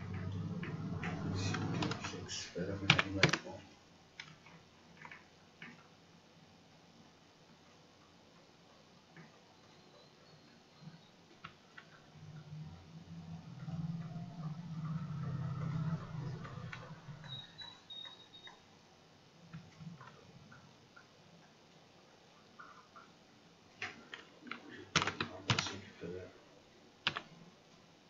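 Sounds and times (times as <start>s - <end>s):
low hum: 0.0s - 2.4s, 12.0s - 17.8s
computer mouse clicks: 4.2s - 5.9s, 27.0s - 27.3s.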